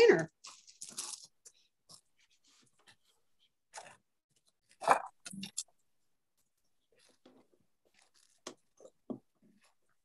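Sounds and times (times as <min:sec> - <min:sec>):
plastic bag crinkling: 0:00.4 - 0:01.4.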